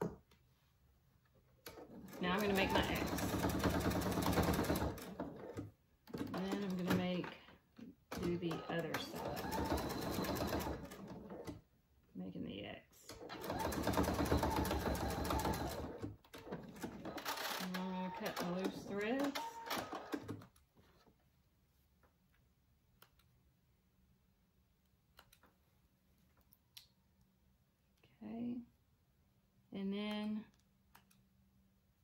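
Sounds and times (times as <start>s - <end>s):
sewing machine stitching: 1.7s - 7.4s, 8.1s - 11.6s, 13.1s - 20.5s.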